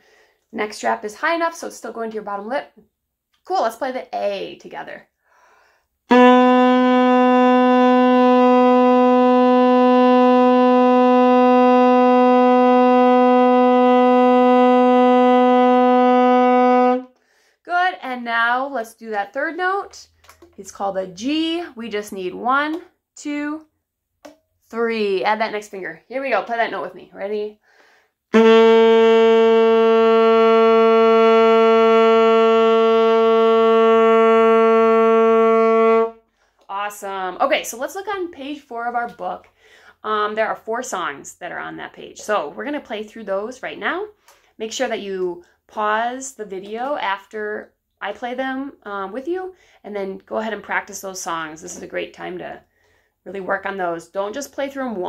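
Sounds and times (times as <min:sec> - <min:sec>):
saxophone long steady note: 0:06.1 - 0:17.2, 0:28.3 - 0:36.2.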